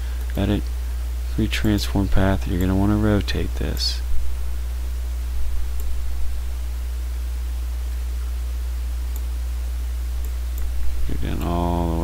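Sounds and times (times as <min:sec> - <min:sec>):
electrical hum with hiss: 0:00.0 - 0:12.0.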